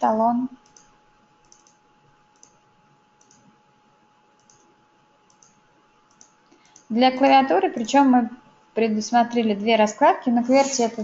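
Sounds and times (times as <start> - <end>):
faint steady hum: 0.0 - 11.0
computer mouse clicks: 0.6 - 2.6, 3.2 - 3.6, 4.4 - 6.9.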